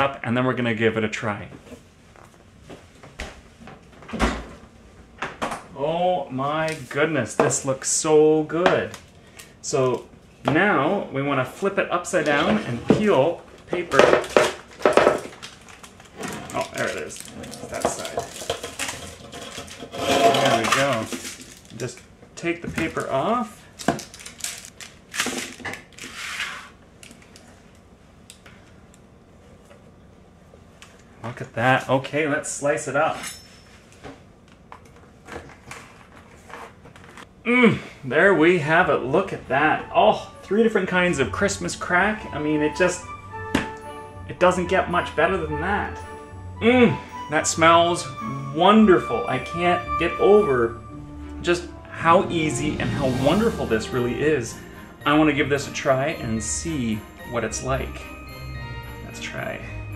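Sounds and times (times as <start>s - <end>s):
parchment paper rustling: 14.8s - 22.0s
kitchenware clicks and knocks: 17.8s - 21.1s.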